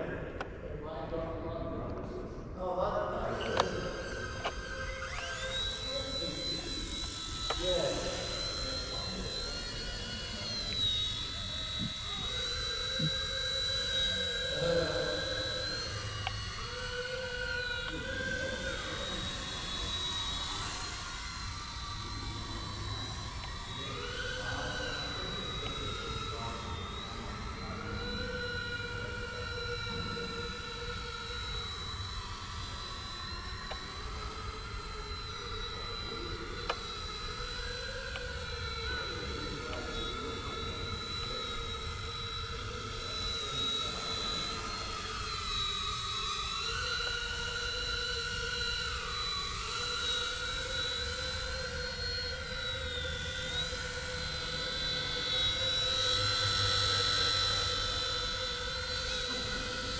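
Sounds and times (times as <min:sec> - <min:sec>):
toy helicopter rotor whine: 0:00.0 - 0:59.9.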